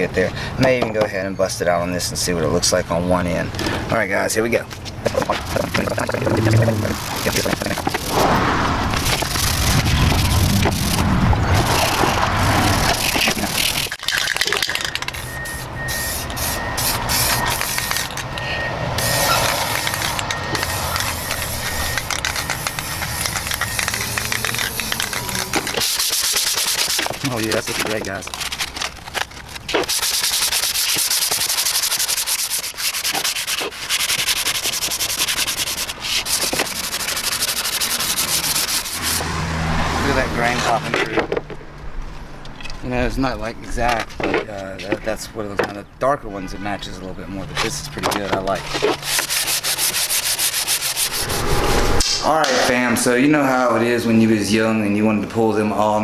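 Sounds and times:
sanding block rasping on wood: 20.6 - 27.9, 29.8 - 39.3, 48.7 - 51.4.

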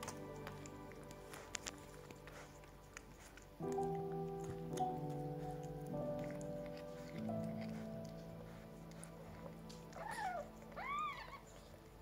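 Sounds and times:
cat meowing: 9.9 - 11.6.

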